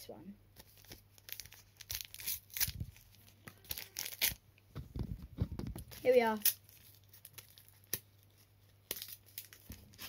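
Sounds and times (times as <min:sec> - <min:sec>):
wrapper tearing and crinkling: 0:00.6 - 0:04.4, 0:05.6 - 0:10.0.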